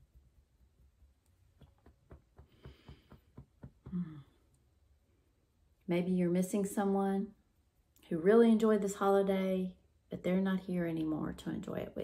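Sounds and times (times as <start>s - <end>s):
fingertips tapping on body: 1.3s - 4.3s
woman speaking: 5.9s - 7.4s, 8.0s - 12.0s.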